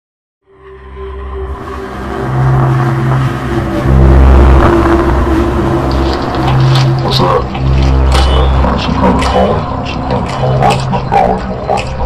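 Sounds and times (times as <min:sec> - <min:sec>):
dark rumbling trailer music: 0:00.4 - 0:12.0.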